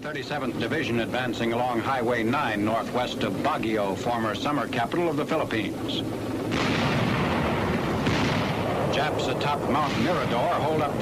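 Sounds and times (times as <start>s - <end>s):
continuous low rumble: 0.0s - 11.0s
artillery and gunfire: 6.4s - 11.0s
explosion blast: 6.5s - 11.0s.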